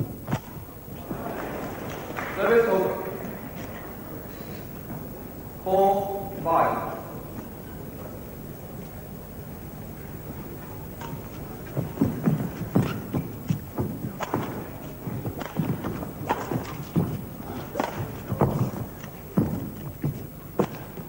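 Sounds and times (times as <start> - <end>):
footfalls on court: 10.2 - 21.0
racket striking shuttlecock: 10.9 - 19.4.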